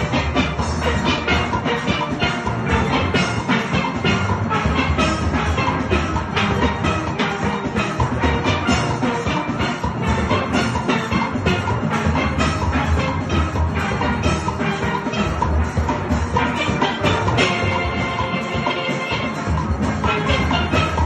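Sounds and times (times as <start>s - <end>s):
drums: 0.0s - 21.0s
steel pan band playing: 0.0s - 21.0s.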